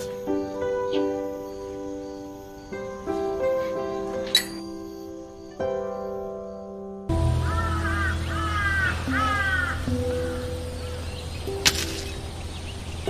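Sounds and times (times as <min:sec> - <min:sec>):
soft background music: 0:00.0 - 0:13.0
crow cawing: 0:07.3 - 0:10.9.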